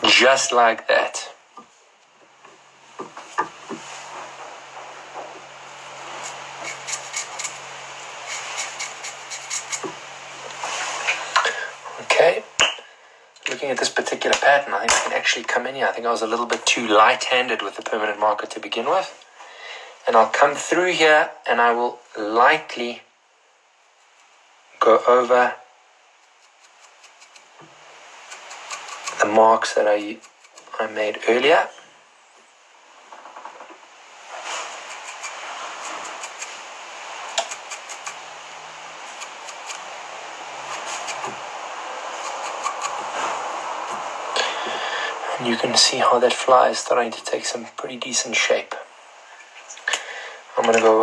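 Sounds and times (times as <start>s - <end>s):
person speaking: 0.0s - 1.4s, 28.3s - 31.8s, 39.0s - 48.8s, 49.7s - 51.0s
faint low hum: 0.0s - 51.0s
marker scratching on fibres: 5.7s - 11.2s, 24.0s - 24.4s, 26.2s - 27.6s, 28.2s - 29.2s, 30.1s - 30.7s, 34.3s - 38.3s, 39.0s - 39.9s, 40.5s - 44.1s.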